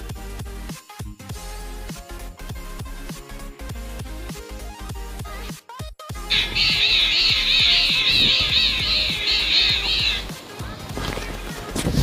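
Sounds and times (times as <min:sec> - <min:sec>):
background music: 0:00.0 - 0:12.0
high wavering melody: 0:06.3 - 0:10.3.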